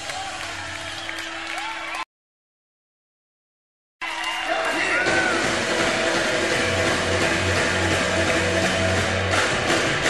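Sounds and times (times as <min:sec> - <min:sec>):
distorted electric guitars: 0:04.9 - 0:10.0
pulsing bass line: 0:05.1 - 0:10.0.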